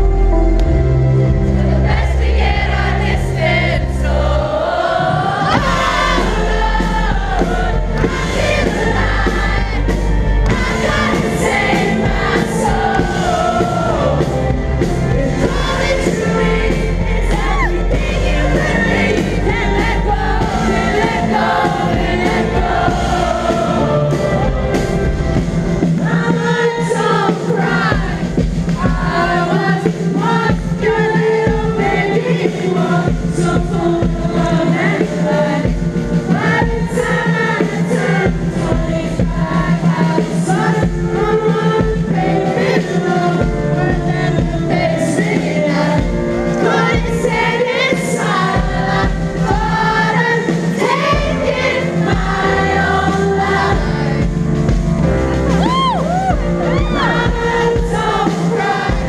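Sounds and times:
pop-rock band playing: 0.0 - 59.0.

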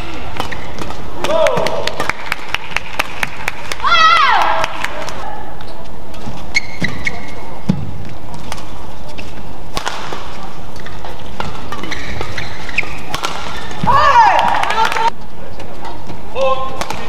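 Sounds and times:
rackets hitting shuttlecock: 0.0 - 3.8, 4.9 - 17.0
sports hall background: 0.0 - 17.0
shoe squeaks on court: 5.6 - 7.7, 11.6 - 13.8.

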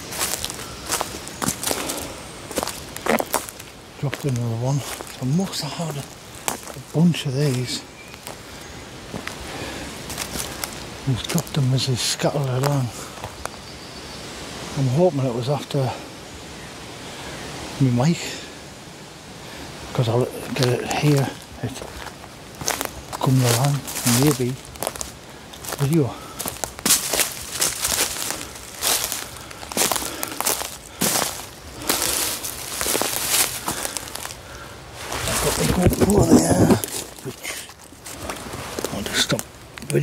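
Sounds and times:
footsteps crunching dry leaves: 0.0 - 13.6, 20.3 - 40.0
faint outdoor hiss: 0.0 - 40.0
man's voice: 4.0 - 6.1, 6.8 - 7.8, 11.0 - 13.0, 19.9 - 21.9, 23.2 - 24.6, 25.8 - 26.3, 35.2 - 37.7.

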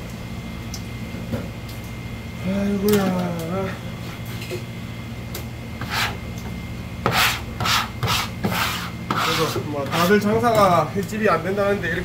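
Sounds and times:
scraping on plastic cutting board: 5.8 - 6.2, 7.0 - 10.2.

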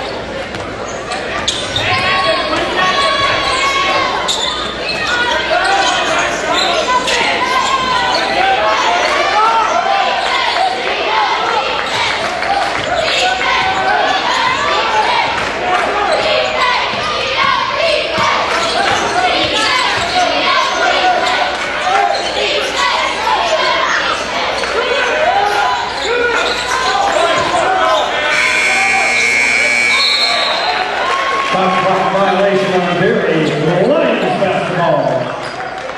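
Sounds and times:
voices of players and spectators: 0.0 - 35.9
sneakers squeaking on wooden floor: 0.5 - 8.3, 24.1 - 30.8
steady high tone: 28.2 - 30.6.

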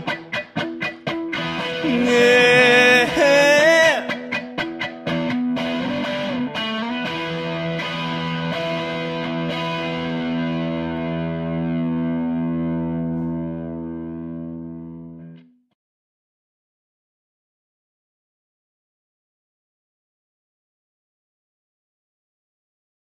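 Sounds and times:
distorted electric guitar chords: 0.0 - 15.6.

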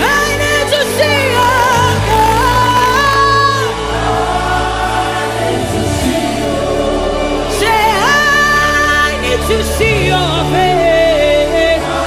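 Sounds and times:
band playing chords and bass: 0.0 - 12.0.

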